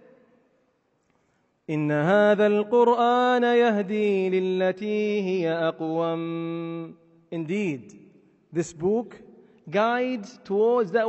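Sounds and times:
man chanting melodically: 1.7 - 7.9, 8.5 - 11.0.

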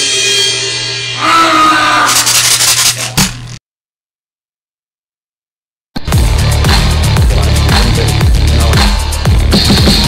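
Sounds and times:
backing track music: 6.0 - 10.0
drum kit playing: 6.0 - 10.0.

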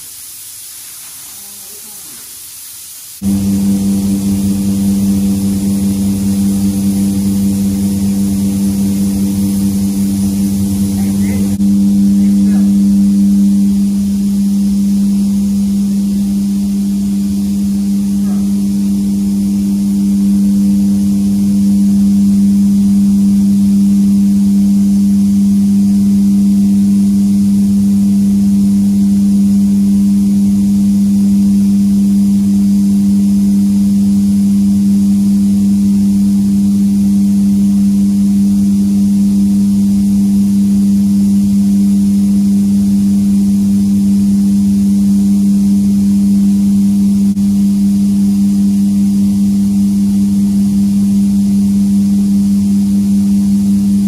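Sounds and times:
machine hum with low drone: 3.2 - 54.0.

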